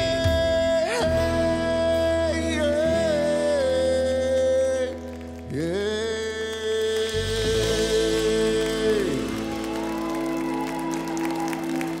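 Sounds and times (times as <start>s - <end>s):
audience clapping and applause: 4.9s - 12.0s.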